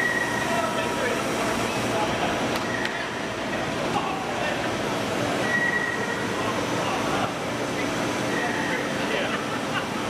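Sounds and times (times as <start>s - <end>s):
high squeal: 0.0s - 0.7s, 2.6s - 3.4s, 5.4s - 6.5s
machine-shop background noise: 0.0s - 10.0s.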